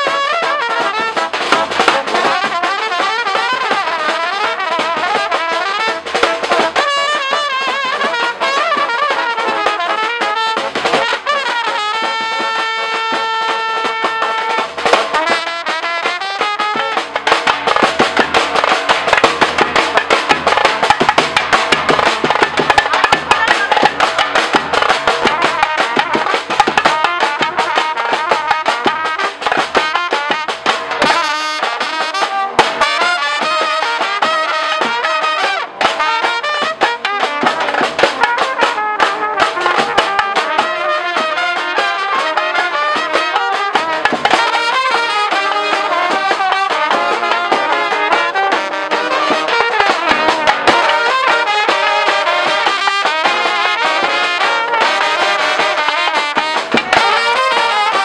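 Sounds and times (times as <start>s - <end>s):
snare drum: 0.0s - 58.0s
trumpets playing melody: 0.0s - 58.0s.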